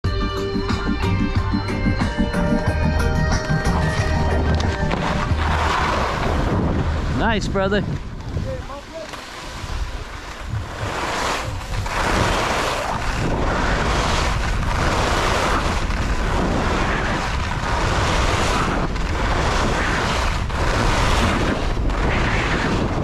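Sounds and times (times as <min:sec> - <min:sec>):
wind buffeting microphone: 0:02.2 - 0:23.0
skis running on snow: 0:04.8 - 0:07.2, 0:08.0 - 0:23.0.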